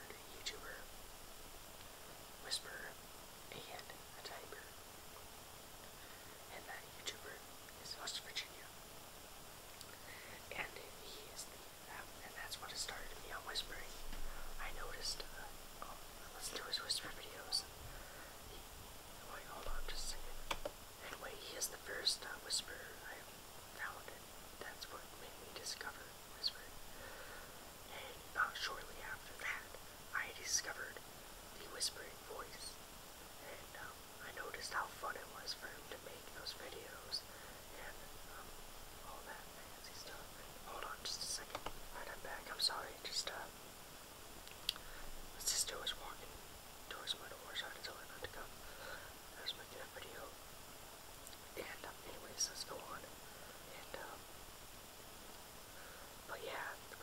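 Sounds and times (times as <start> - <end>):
person whispering: 0.0 - 0.9, 2.4 - 4.8, 5.9 - 8.7, 9.9 - 31.0, 31.6 - 32.8, 33.4 - 43.5, 44.7 - 50.4, 51.5 - 54.2, 55.8 - 57.0.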